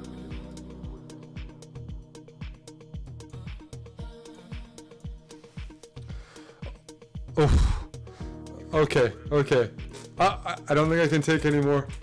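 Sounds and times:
techno music with kick drum: 0:00.0 - 0:12.0.

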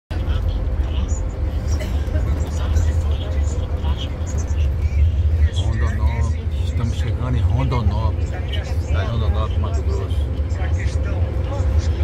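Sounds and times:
bus engine and road noise: 0:00.1 - 0:12.0.

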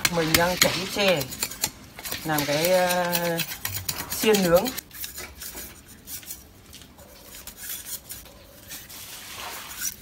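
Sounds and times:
knife scraping bamboo: 0:00.0 - 0:10.0.

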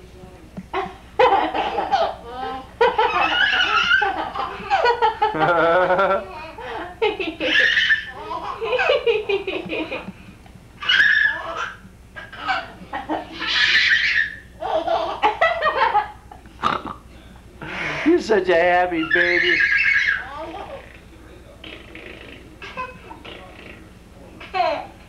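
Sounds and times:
baby laughing and squealing: 0:02.8 - 0:04.9, 0:07.4 - 0:09.0, 0:10.8 - 0:15.2, 0:19.0 - 0:20.8.

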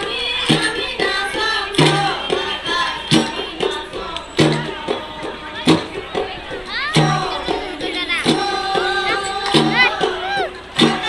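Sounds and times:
drum beating: 0:00.0 - 0:11.0
voices calling and singing: 0:00.0 - 0:11.0.

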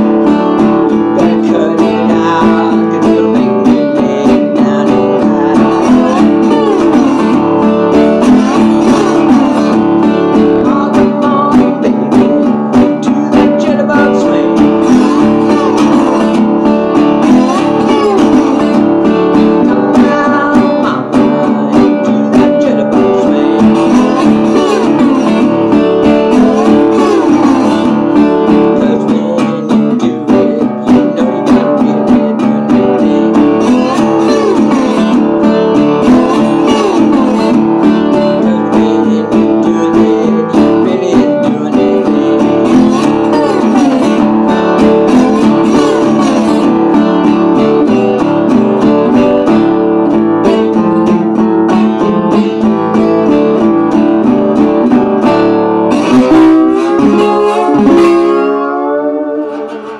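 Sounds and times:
slide guitar blues: 0:00.0 - 0:59.9.

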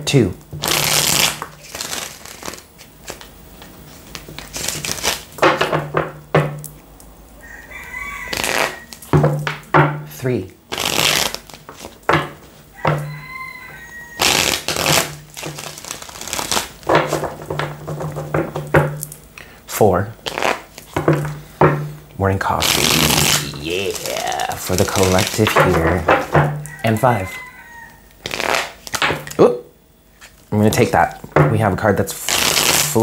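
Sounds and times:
cards being riffle-shuffled: 0:00.6 - 0:05.8, 0:08.3 - 0:09.1, 0:10.7 - 0:12.6, 0:14.2 - 0:18.3, 0:20.2 - 0:21.2, 0:22.6 - 0:26.8, 0:28.2 - 0:29.4, 0:32.1 - 0:33.0.

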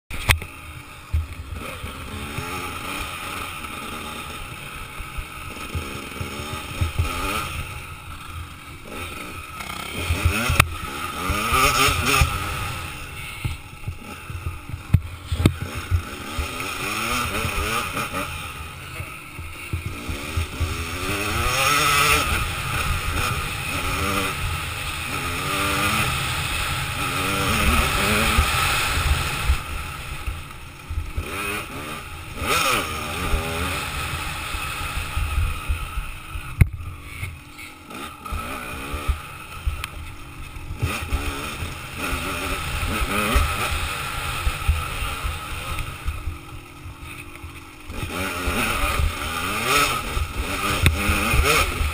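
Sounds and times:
dirt bike engine revving: 0:00.1 - 0:51.9.

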